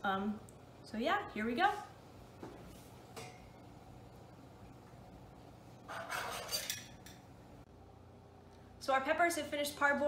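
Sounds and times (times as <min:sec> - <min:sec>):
metal kitchen utensils clattering: 0:05.9 - 0:07.3.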